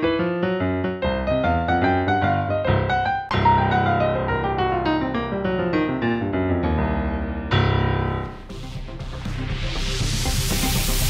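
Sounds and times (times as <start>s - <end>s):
boogie-woogie digital piano: 0.0s - 11.0s.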